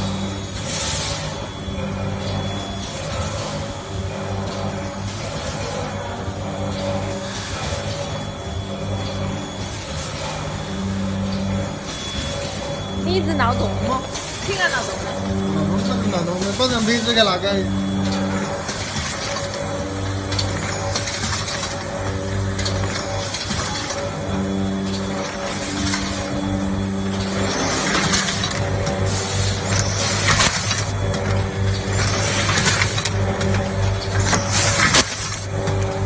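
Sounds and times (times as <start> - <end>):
packing machinery humming: 0.0 - 36.0.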